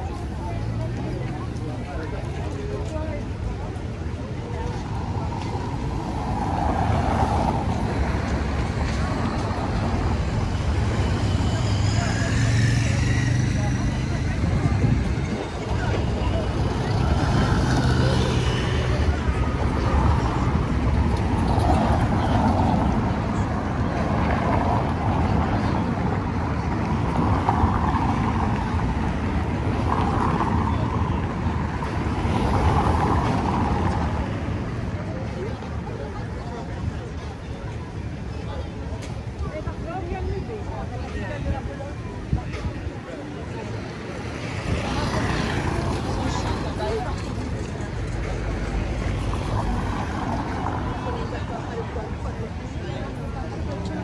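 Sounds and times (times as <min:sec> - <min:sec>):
pedestrians' voices: 0:00.0 - 0:54.0
motor traffic passing: 0:03.6 - 0:35.3.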